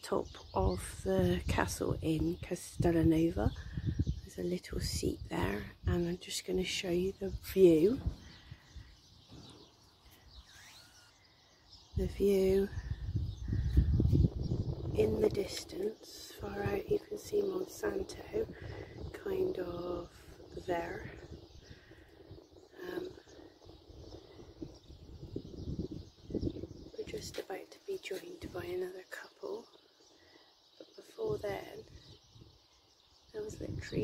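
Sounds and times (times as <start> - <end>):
bird chirps and calls: 0.0 - 34.0
quiet open-air background noise: 0.0 - 34.0
low rumble on microphone: 0.2 - 10.5, 11.5 - 29.8, 31.2 - 34.0.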